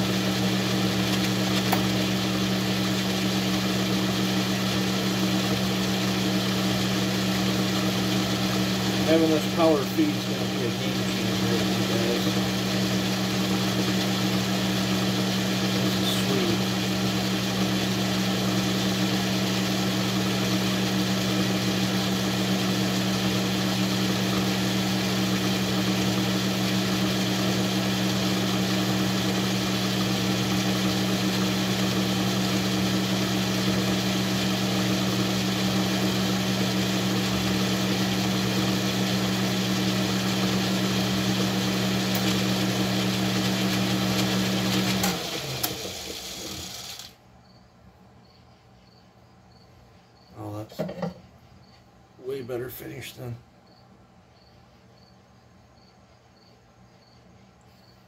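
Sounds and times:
metal lathe motor humming: 0:00.0 - 0:47.1.

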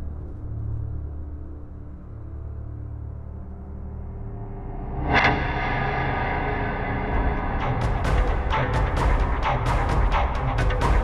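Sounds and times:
low sustained drone: 0:00.0 - 0:11.0
deep pulse: 0:02.8 - 0:11.0
rapid sharp percussive hits: 0:07.6 - 0:11.0.

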